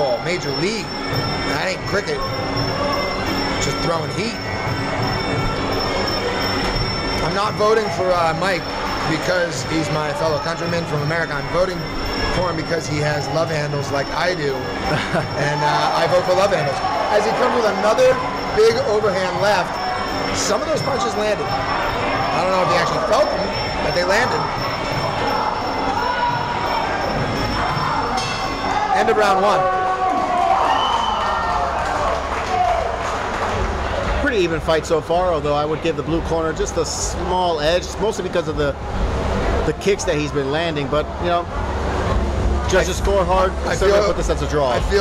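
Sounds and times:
crowd shouting and cheering: 0.0 - 45.0.

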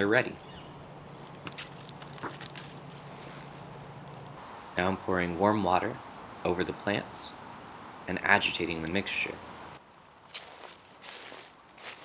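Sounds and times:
rustling on dry leaves and gravel: 0.0 - 4.4, 8.9 - 12.0.

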